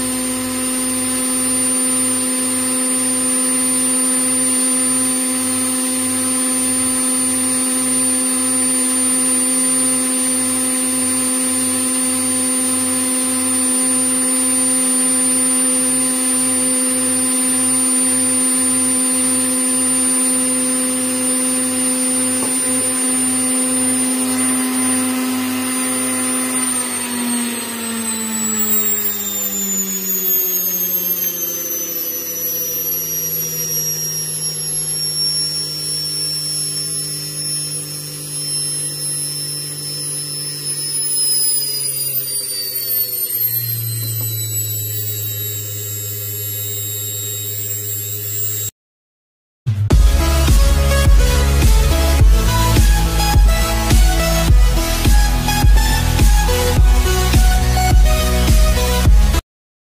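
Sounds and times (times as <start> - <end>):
electric motor whining: 0.0 - 48.7, 49.9 - 59.4.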